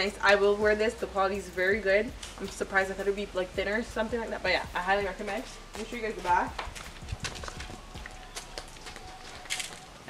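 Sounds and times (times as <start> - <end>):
soft footstep taps and rustles: 6.2 - 9.9.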